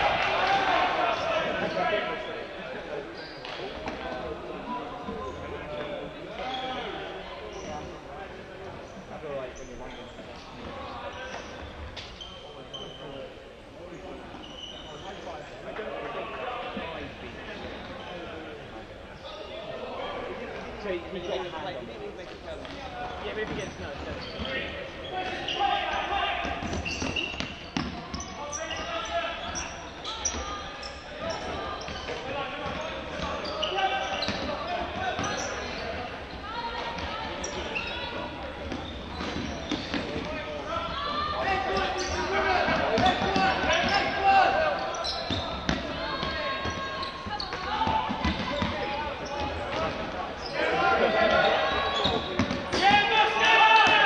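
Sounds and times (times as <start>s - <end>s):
players shouting in a hall: 0.0s - 2.9s, 24.4s - 27.3s, 39.2s - 54.0s.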